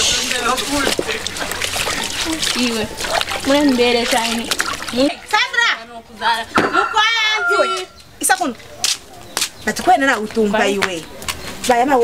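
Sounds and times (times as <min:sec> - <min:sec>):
clothes scrubbed by hand: 0:00.0 - 0:05.4
water splashing in a basin: 0:00.0 - 0:07.2.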